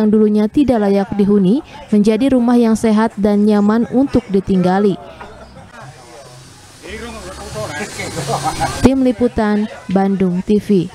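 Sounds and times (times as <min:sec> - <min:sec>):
distant people talking: 0:00.6 - 0:10.9
steady hiss: 0:05.2 - 0:09.2.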